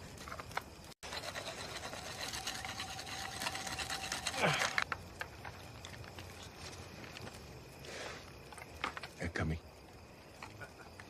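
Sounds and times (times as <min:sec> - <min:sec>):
campfire crackling and popping: 0:00.0 - 0:11.0
steady hiss: 0:00.0 - 0:11.0.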